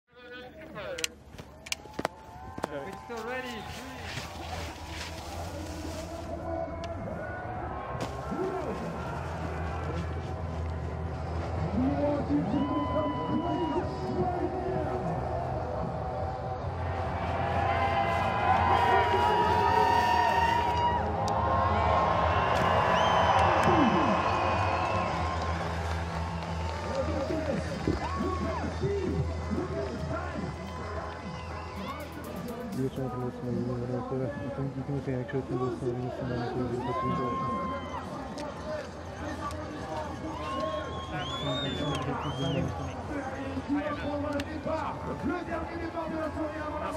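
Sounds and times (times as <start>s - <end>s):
spectators cheering and shouting: 1.6s - 33.8s, 35.4s - 46.9s
music: 4.7s - 46.9s.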